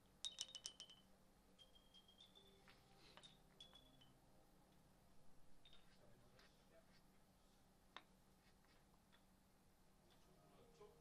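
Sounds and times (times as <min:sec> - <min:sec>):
pins clicking and ringing: 0:00.2 - 0:04.2.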